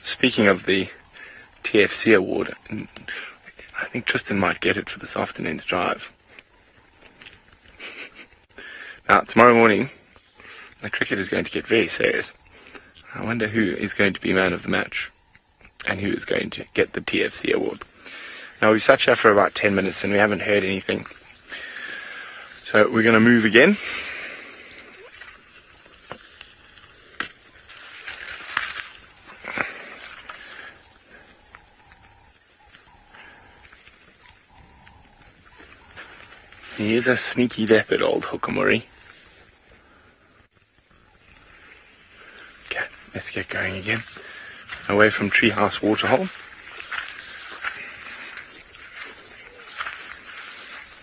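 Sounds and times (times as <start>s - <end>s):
outdoor bush ambience hiss: 0.0s - 51.0s
rustling and scuffing on sand: 17.3s - 30.9s, 35.1s - 39.4s, 41.4s - 51.0s
man's voice: 18.6s - 21.2s, 22.6s - 23.8s, 44.8s - 46.4s.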